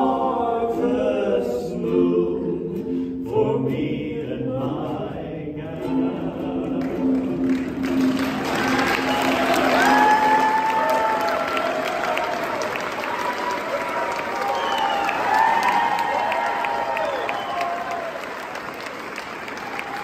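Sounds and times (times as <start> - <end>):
voices singing in harmony: 0.0 - 10.6
audience applauding: 7.1 - 20.0
audience cheering: 7.8 - 20.0.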